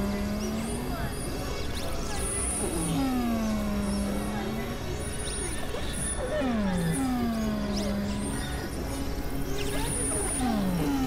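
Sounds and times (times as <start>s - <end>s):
synthesizer tone sliding downward: 0.0s - 1.0s, 2.6s - 4.8s, 6.4s - 8.6s, 10.3s - 11.0s
noisy synthesizer drone: 0.0s - 1.4s, 2.4s - 11.0s.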